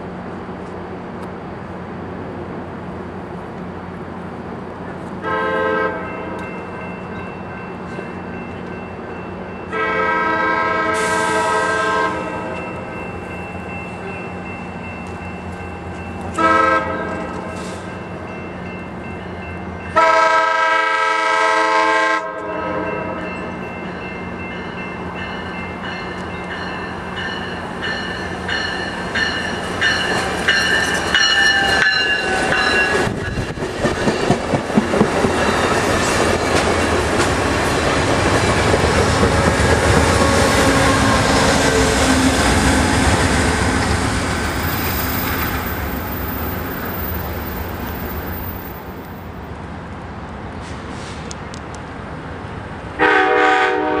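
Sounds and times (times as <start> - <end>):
train horn blasts: 5.2 - 6.4, 9.7 - 12.7, 16.3 - 17.5, 19.9 - 23.3, 53.0 - 54.0
train wheels rumbling on rails: 5.9 - 54.0.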